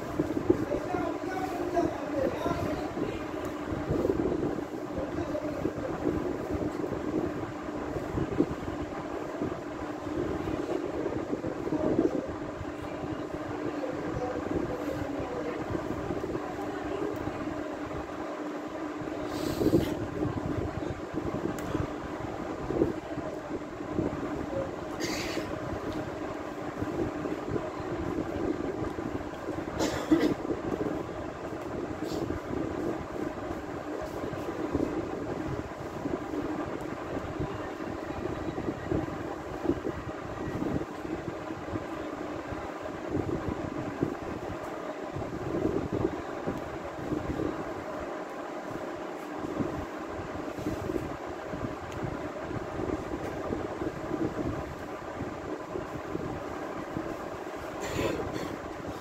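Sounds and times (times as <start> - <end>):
background hum and rumble: 0.0 - 59.0.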